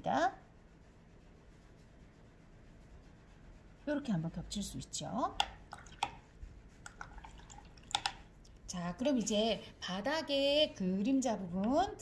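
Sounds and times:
water drips and splashes: 5.4s - 6.2s, 6.8s - 8.3s.

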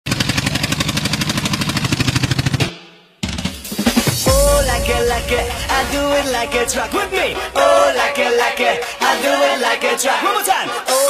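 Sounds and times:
fast drum roll: 0.1s - 9.8s
dance music: 3.5s - 11.0s.

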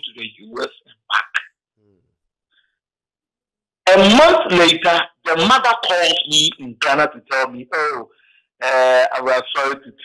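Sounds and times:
man's voice over phone line: 0.0s - 1.4s, 3.9s - 10.0s.

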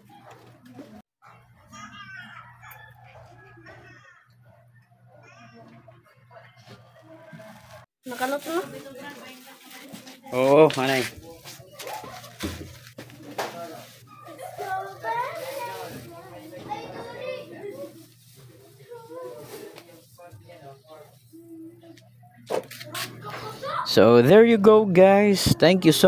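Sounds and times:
voices talking: 1.3s - 26.0s.

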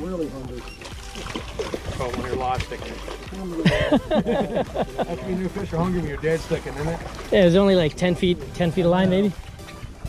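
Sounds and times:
fish thrashing and splashing water: 0.6s - 3.6s, 5.1s - 10.0s.

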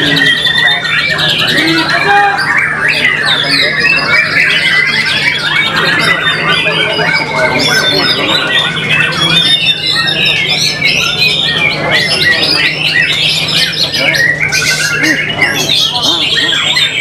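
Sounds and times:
bird singing whistles and chatter: 0.0s - 17.0s
other birds singing: 0.0s - 17.0s.

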